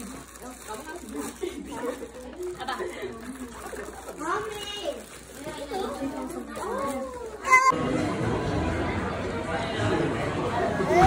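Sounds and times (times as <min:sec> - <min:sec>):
restaurant hubbub of voices: 0:00.0 - 0:11.0
young children chattering: 0:00.0 - 0:11.0.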